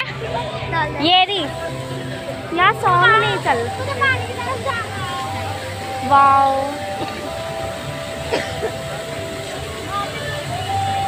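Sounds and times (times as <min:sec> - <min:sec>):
fountain water spraying: 0:00.0 - 0:11.0.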